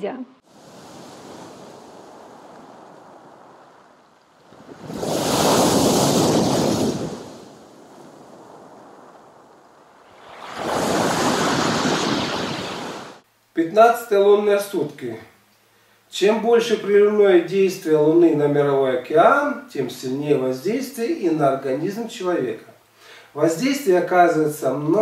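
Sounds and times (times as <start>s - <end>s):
soft wash of surf: 0.4s - 13.2s
sea waves crashing on pebbles: 0.5s - 13.2s.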